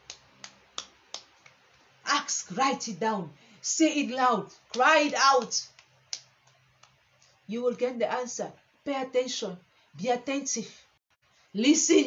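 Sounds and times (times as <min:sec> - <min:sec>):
sharp rhythmic clicks: 0:00.0 - 0:01.9, 0:04.5 - 0:07.0.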